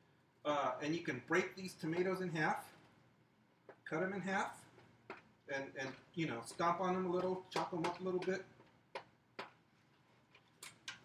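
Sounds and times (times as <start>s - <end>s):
spatula knocking against pot: 4.8s - 9.6s.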